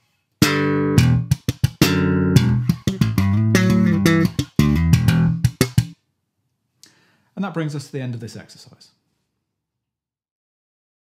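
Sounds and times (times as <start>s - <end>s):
slap bass guitar playing: 0.4s - 6.0s.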